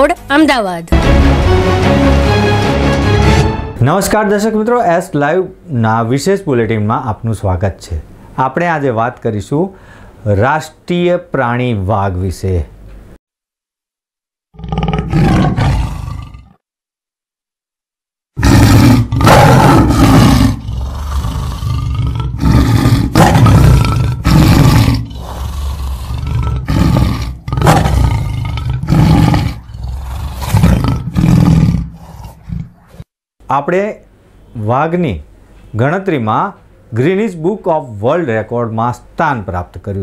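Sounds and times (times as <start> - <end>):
tiger roaring and growling: 14.6 - 16.6, 18.4 - 33.0.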